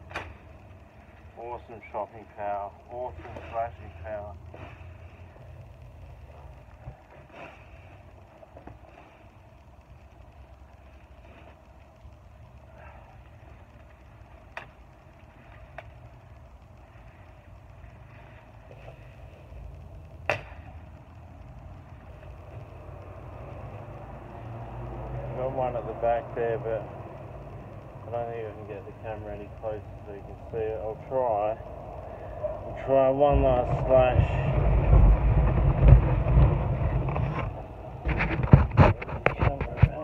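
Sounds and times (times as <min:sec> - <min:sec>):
steady low rumble: 0:00.0 - 0:40.0
machete chopping branches: 0:20.2 - 0:20.7.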